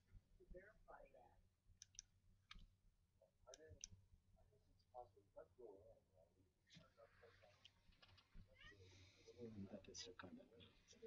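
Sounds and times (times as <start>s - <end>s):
computer mouse clicks: 1.8s - 2.7s.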